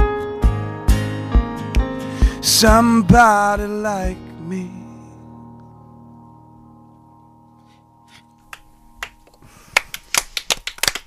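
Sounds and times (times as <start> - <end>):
audience clapping: 9.0 - 11.0.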